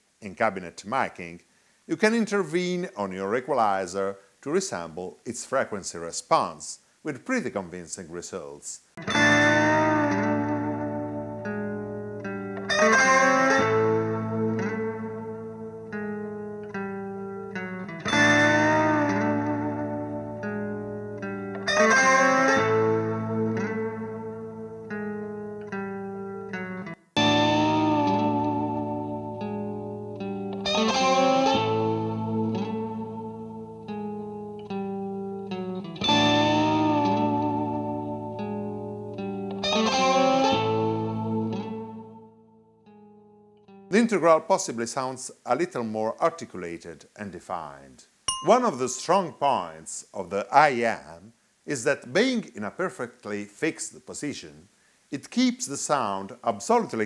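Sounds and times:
electric guitar through amplifier: 0:09.0 - 0:42.3.

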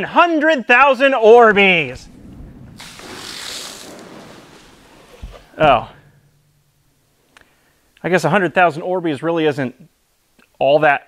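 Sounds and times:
gel beads pouring onto concrete: 0:02.8 - 0:04.0.

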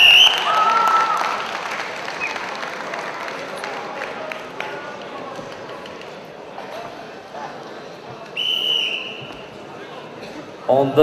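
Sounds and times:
crowd murmur: 0:01.1 - 0:11.0
referee whistle blast: 0:08.4 - 0:09.3.

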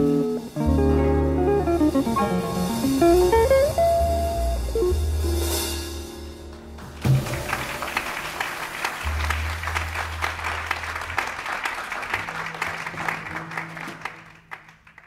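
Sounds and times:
audience applause: 0:06.8 - 0:15.0.

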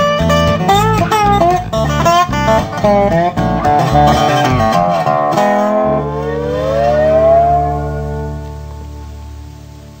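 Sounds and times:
blues guitar chord ringing: 0:00.0 - 0:10.0
guitar note bending upward: 0:00.4 - 0:10.0.

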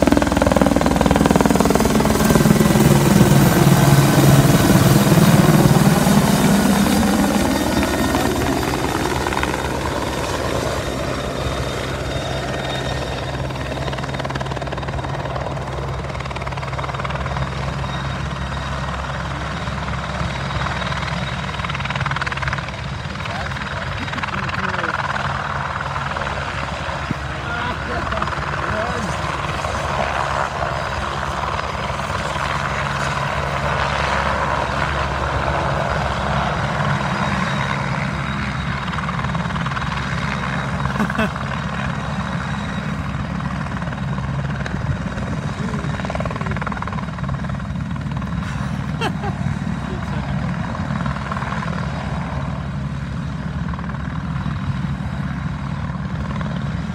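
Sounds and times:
helicopter rotor and turbines droning: 0:00.0 - 0:56.9.

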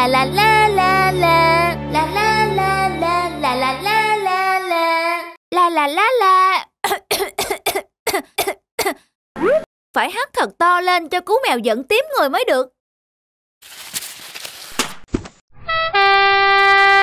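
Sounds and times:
children's song backing: 0:00.0 - 0:05.4.

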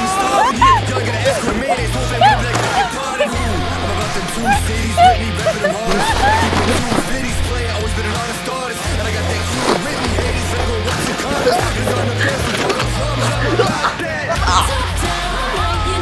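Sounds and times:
sleds sliding on packed snow: 0:00.0 - 0:13.9.

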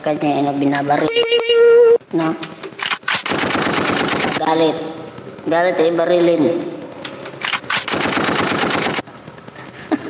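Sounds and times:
automatic gunfire crackle: 0:02.8 - 0:04.6, 0:07.4 - 0:09.1.

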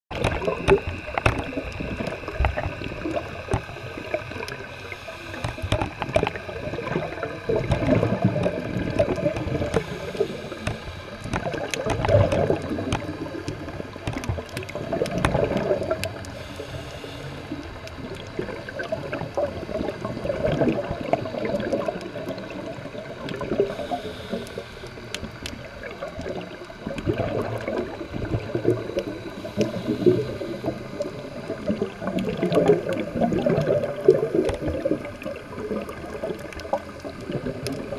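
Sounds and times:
bubbling gurgling surge: 0:00.1 - 0:37.9
muffled underwater noise: 0:00.1 - 0:37.9
sharp clicks: 0:10.6 - 0:16.1.

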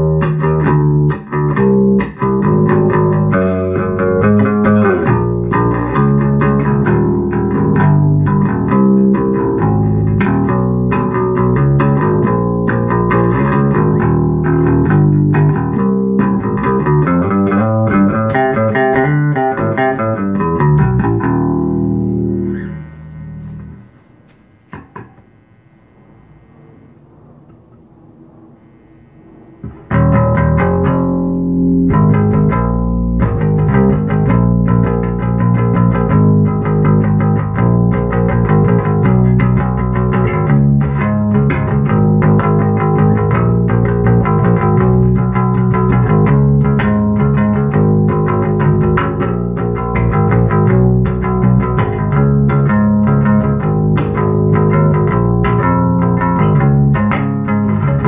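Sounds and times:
electric bass line: 0:00.0 - 0:58.0
faint amplifier hum: 0:00.0 - 0:58.0.

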